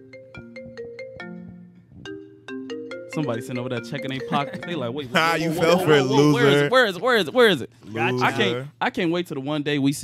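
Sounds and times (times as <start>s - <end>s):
marimba ringtone melody: 0.0s - 5.1s.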